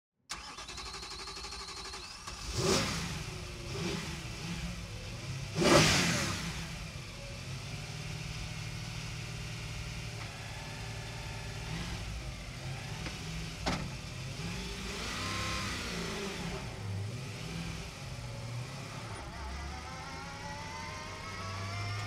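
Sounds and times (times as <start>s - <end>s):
car engine idling and revving: 0.3s - 22.0s.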